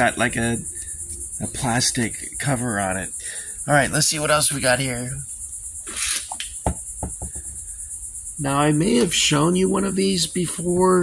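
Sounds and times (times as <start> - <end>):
insect chorus: 0.0 - 11.0
handling knocks and taps: 6.3 - 7.6.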